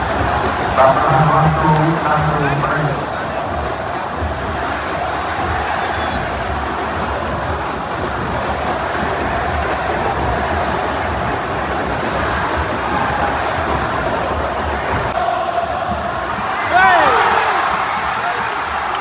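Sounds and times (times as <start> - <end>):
stadium crowd noise: 0.0 - 19.0.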